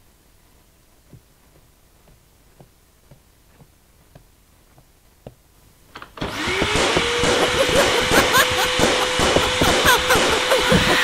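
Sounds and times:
vacuum cleaner motor whine: 0:06.0 - 0:11.0.

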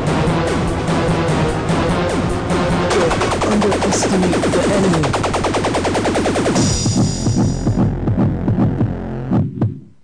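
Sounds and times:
electronic music: 0:00.0 - 0:09.7
low throbbing electronic pulses: 0:00.0 - 0:09.8.

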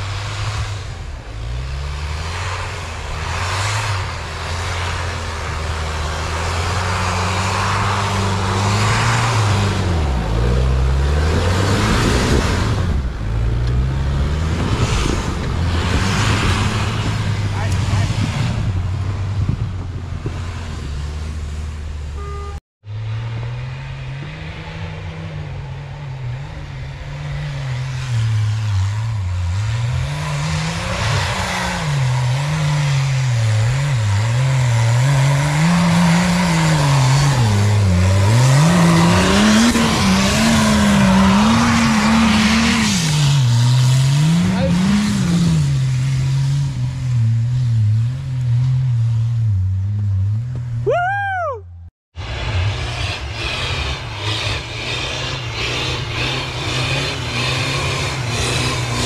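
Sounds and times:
engine revving: 0:00.0 - 0:51.0, 0:52.2 - 0:59.0
tyres on snow: 0:00.0 - 0:51.4, 0:52.2 - 0:59.0.

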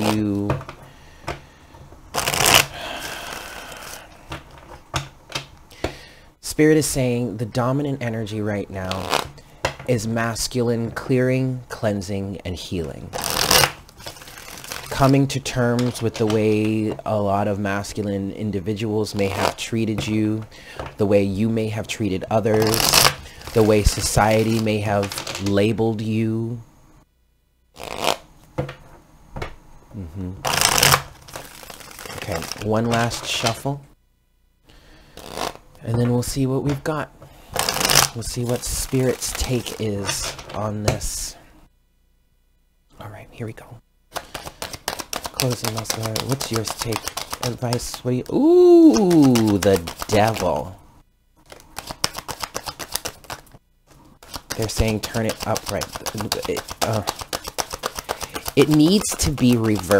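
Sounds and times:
cards being shuffled: 0:00.0 - 0:01.4, 0:02.1 - 0:04.8, 0:08.8 - 0:09.4, 0:13.1 - 0:17.0, 0:19.1 - 0:20.2, 0:22.4 - 0:25.6, 0:27.8 - 0:28.2, 0:30.4 - 0:33.6, 0:35.1 - 0:35.6, 0:37.6 - 0:41.0, 0:44.1 - 0:50.7, 0:51.4 - 0:59.9
deck of cards tapping: 0:44.1 - 0:48.1, 0:48.8 - 0:50.4, 0:51.5 - 0:53.5, 0:54.2 - 0:59.9.

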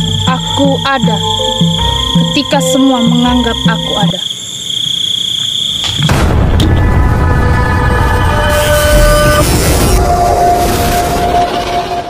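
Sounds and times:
crickets trilling: 0:00.0 - 0:10.6
sudden loud hit: 0:06.0 - 0:08.2.

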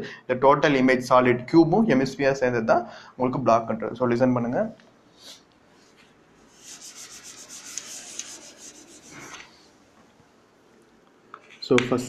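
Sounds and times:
duster scraping chalkboard: 0:06.5 - 0:09.6.

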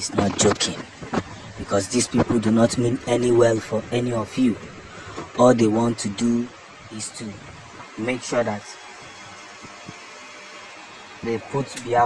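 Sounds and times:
microphone hiss: 0:00.0 - 0:10.1.

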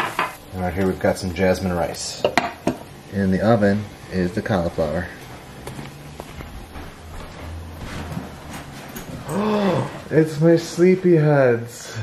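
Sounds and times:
low steady hum: 0:00.0 - 0:12.0
drawn-out vocal sound: 0:09.2 - 0:10.4.

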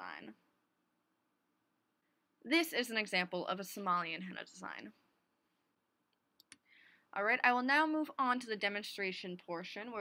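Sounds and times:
person speaking: 0:02.4 - 0:05.0.

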